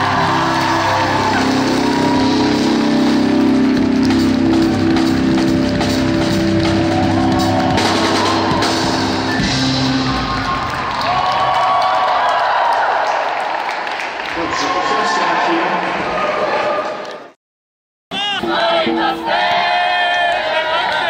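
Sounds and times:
keyboard: 0.0 - 10.6
drums: 0.0 - 12.0
crowd clapping along: 0.0 - 17.4, 19.3 - 21.0.

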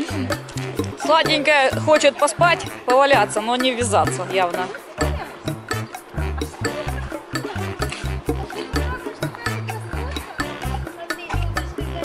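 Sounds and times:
deep repeating bass notes: 0.0 - 12.0
music with steady beat: 0.0 - 12.0.

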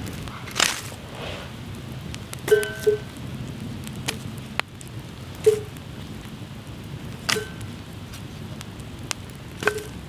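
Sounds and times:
campfire crackling: 0.0 - 10.0
log knocking onto fire: 9.1 - 10.0.

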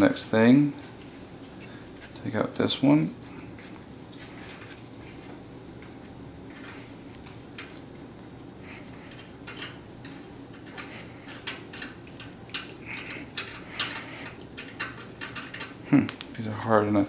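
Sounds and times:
light metallic clicks and rattles: 9.1 - 16.2.

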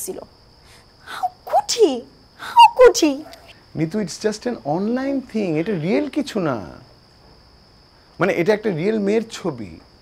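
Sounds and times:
woman's tearful voice: 1.1 - 1.7, 2.4 - 3.2.

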